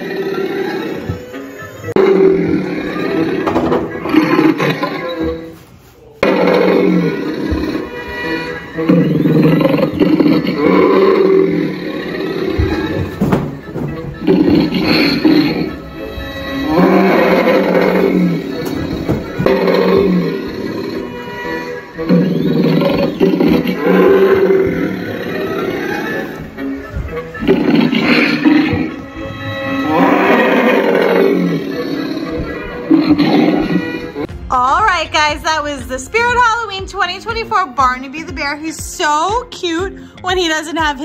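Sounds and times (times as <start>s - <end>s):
animatronic roars and growls: 0.0s - 5.5s, 6.2s - 13.2s, 14.2s - 26.4s, 27.4s - 34.3s
music from animatronic: 0.0s - 41.0s.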